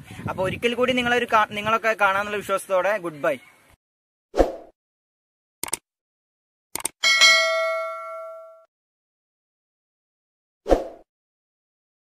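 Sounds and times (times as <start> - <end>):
quick double clicks: 5.6 - 5.8, 6.7 - 7.0
notification bell ding: 7.0 - 8.7.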